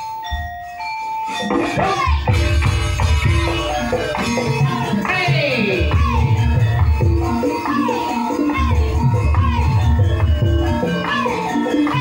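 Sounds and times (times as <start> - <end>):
gamelan melody: 0.0 - 12.0.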